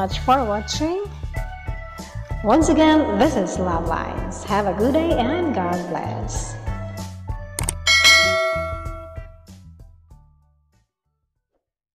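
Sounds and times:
music with low bass line: 1.7 - 9.4
bell-like ding: 7.7 - 9.4.

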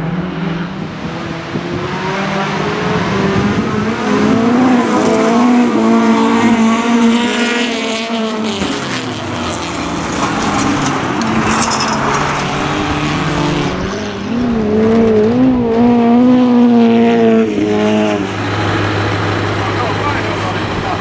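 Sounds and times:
race car engines revving: 0.0 - 21.0.

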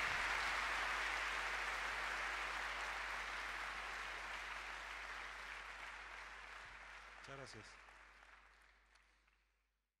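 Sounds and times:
faint audience applause: 0.0 - 9.7.

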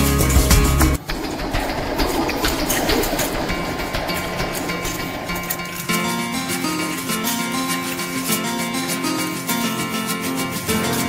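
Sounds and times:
bows shooting arrows clatter: 1.0 - 11.0.

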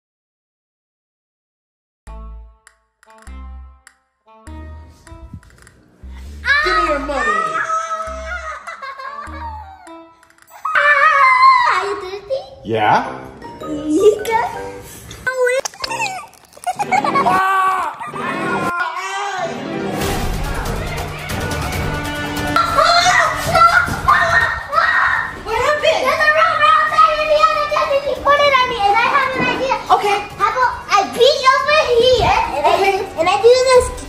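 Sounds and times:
sharp clicks: 2.6 - 4.0, 5.0 - 5.8, 8.1 - 10.5
boy talking excitedly: 6.4 - 8.4, 10.8 - 12.7, 22.6 - 34.0.

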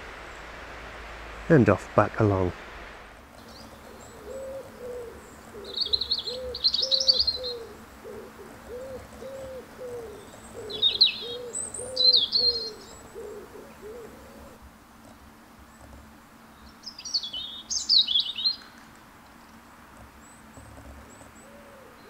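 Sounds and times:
high chattering birdsong: 0.0 - 22.0
bird hooting: 3.4 - 14.6, 21.3 - 22.0.

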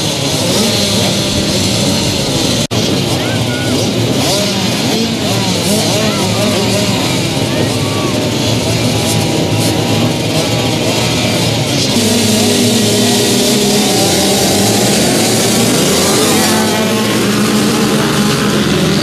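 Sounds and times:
motocross bikes accelerating: 0.0 - 19.0.

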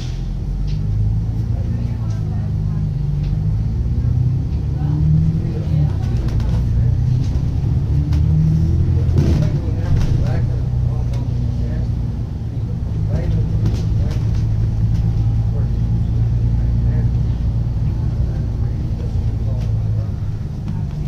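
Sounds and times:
bus diesel engine drone: 0.0 - 21.0.

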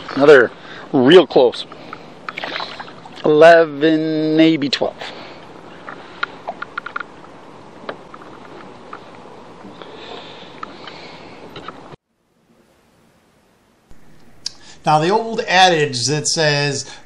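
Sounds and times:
lake water noise: 2.3 - 3.3
small clicks and knocks of gear: 5.8 - 7.1.

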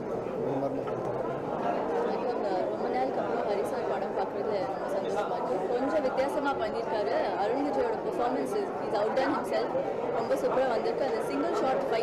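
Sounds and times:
several voices chattering: 0.0 - 12.0.

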